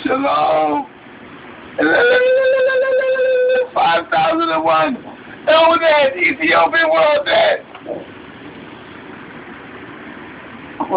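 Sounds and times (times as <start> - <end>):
room noise hum and hiss: 0.0 - 10.9.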